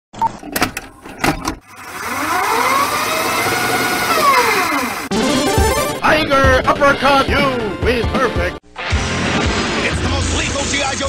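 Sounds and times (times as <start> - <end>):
electronic tones swooping: 5.1 - 6.0.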